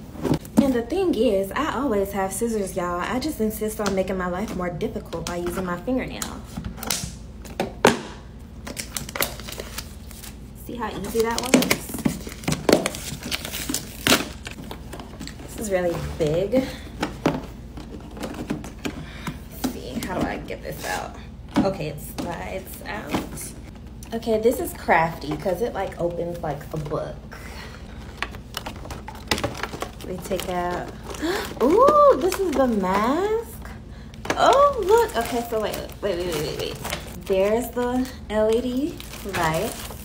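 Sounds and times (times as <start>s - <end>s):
plastic packaging clicking and crinkling: 8.6s - 10.4s, 11.0s - 15.7s, 27.8s - 40.0s.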